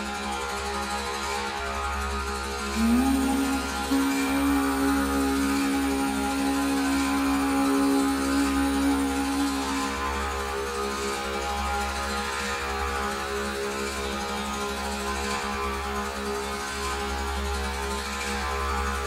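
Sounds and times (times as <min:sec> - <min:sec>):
meditative drone music: 0:00.0 - 0:19.0
held low note: 0:02.6 - 0:11.4.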